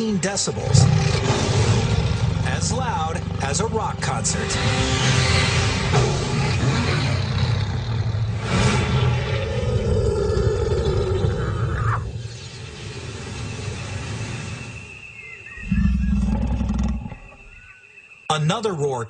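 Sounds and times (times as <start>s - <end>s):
lion roaring: 0.7s - 2.4s, 9.4s - 12.1s, 15.6s - 17.7s.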